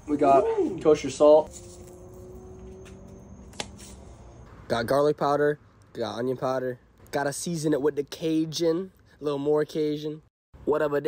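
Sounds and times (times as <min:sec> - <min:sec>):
sharp click: 0:02.9 - 0:03.8.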